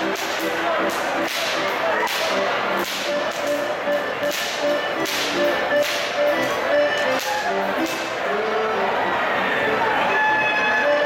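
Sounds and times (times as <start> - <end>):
whip cracks: 0.0 - 8.1
music: 0.0 - 11.0.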